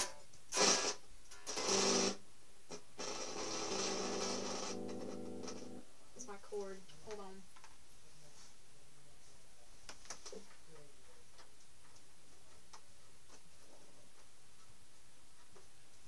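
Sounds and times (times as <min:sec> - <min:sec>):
guitar amplifier hum: 0:00.0 - 0:05.9.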